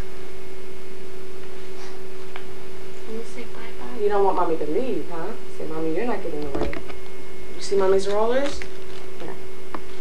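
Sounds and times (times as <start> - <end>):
steady electronic hum: 0.0 - 10.0
tape hiss: 0.0 - 10.0.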